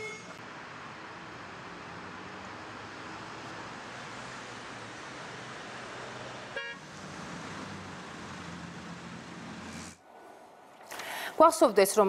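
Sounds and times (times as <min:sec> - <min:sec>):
car horn toot: 0:00.0 - 0:00.4, 0:06.6 - 0:06.8
street traffic: 0:00.0 - 0:12.0.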